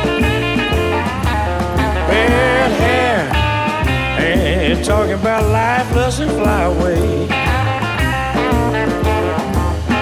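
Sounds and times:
electric blues band playing: 0:00.0 - 0:10.0.

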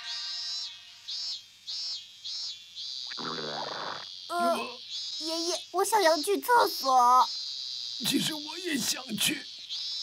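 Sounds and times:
cicadas chirring: 0:00.1 - 0:10.0.

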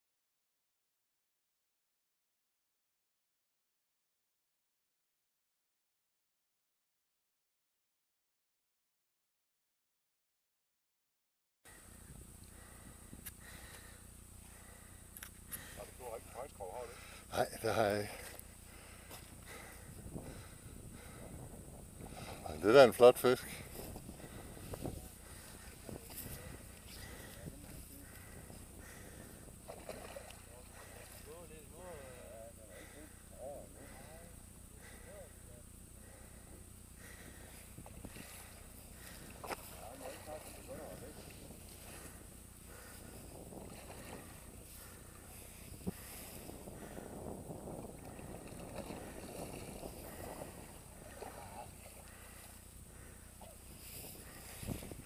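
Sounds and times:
open-air background noise: 0:11.7 - 0:55.0.

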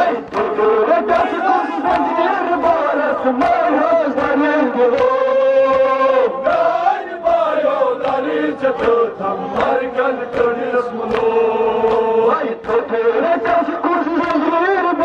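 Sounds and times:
man singing mourning chant: 0:00.0 - 0:15.0.

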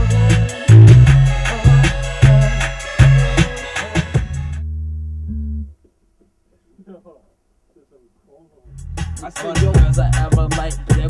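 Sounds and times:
hip-hop beat: 0:00.0 - 0:05.7, 0:08.7 - 0:11.0.

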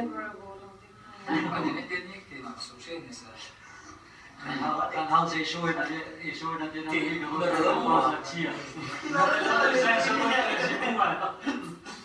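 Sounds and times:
people talking: 0:00.0 - 0:03.6, 0:04.4 - 0:11.8.

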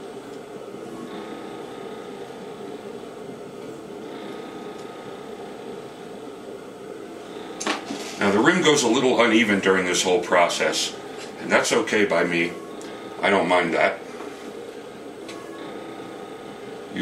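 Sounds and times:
potter's wheel humming: 0:00.0 - 0:17.0.

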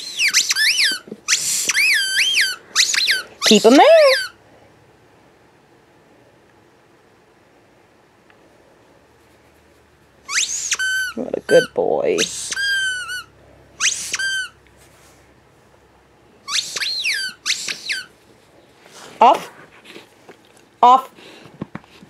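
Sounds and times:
squeaky plush toy squeaking: 0:00.0 - 0:04.4, 0:10.3 - 0:14.6, 0:16.4 - 0:18.1.

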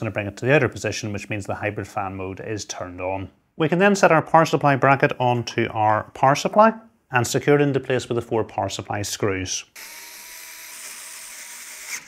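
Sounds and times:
electric screwdriver whining: 0:09.8 - 0:12.0.

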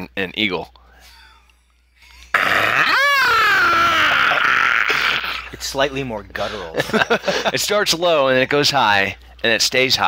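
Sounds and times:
man imitating eagle screech: 0:02.3 - 0:05.5.

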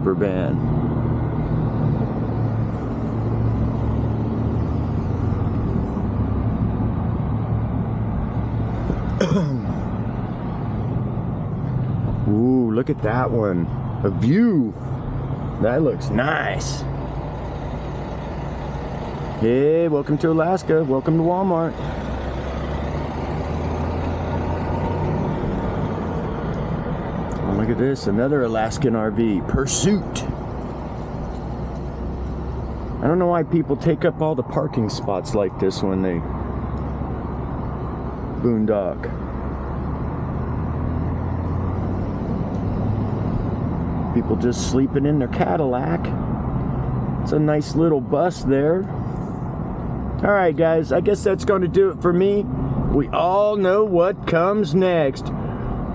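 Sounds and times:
vehicle engine and road noise: 0:00.0 - 0:55.9
road hiss: 0:01.4 - 0:06.2, 0:14.6 - 0:19.4, 0:21.7 - 0:28.7, 0:29.6 - 0:33.0, 0:48.8 - 0:50.0.

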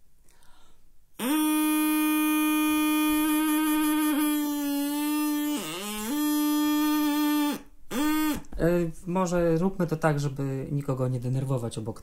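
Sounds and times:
buzzy straw reed note: 0:01.2 - 0:08.6.

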